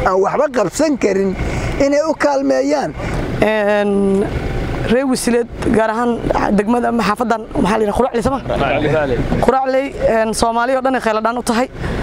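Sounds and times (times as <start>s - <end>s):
woman speaking: 0.0s - 8.5s, 9.4s - 11.7s.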